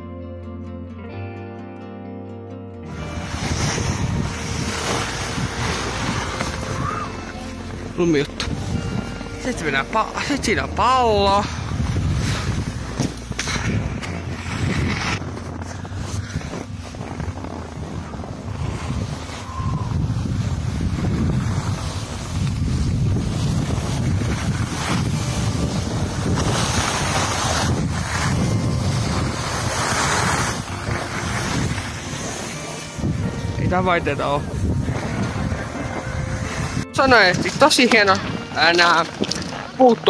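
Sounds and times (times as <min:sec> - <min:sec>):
wind rushing over microphone: 0:02.9 - 0:39.8
skis sliding over packed snow: 0:02.9 - 0:40.0.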